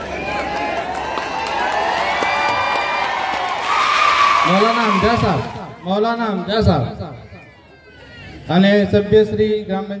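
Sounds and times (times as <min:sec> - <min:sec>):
audience talking and cheering: 0:00.0 - 0:10.0.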